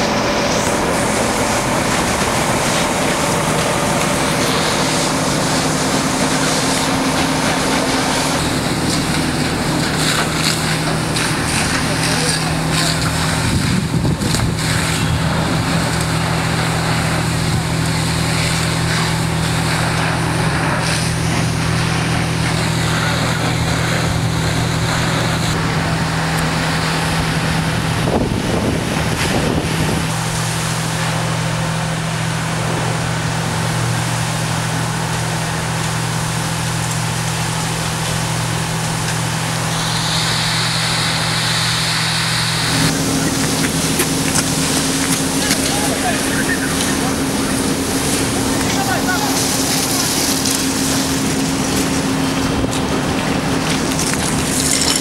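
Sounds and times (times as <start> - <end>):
rushing hose water hiss: 0.0 - 25.6, 26.3 - 55.0
low engine drone: 0.0 - 55.0
higher hiss: 38.8 - 51.6.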